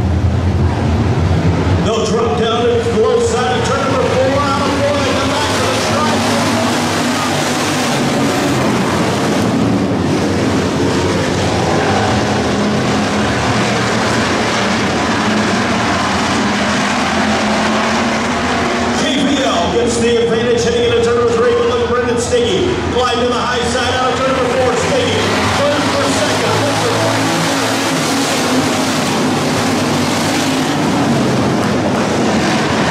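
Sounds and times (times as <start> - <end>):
race car engines droning: 0.0 - 32.9.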